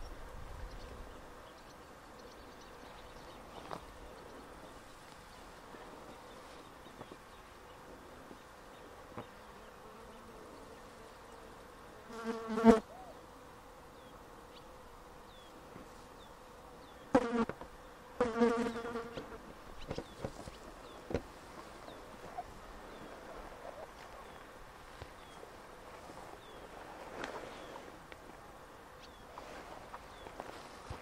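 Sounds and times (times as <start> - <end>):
flying insect buzzing: 2.7 - 31.0.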